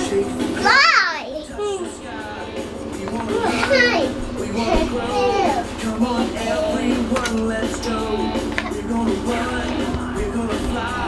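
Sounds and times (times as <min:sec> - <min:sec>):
children's tv programme: 0:00.0 - 0:11.0
young child's voice: 0:00.6 - 0:01.9, 0:03.4 - 0:04.2, 0:05.1 - 0:05.6.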